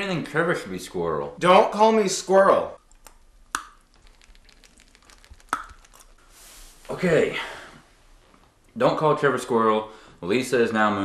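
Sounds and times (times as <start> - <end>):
faint small crackles: 2.8 - 6.8.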